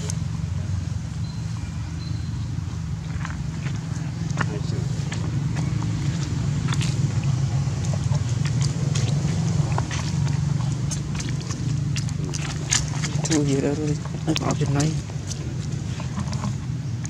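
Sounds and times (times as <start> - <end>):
low rumble: 0.0 - 17.0.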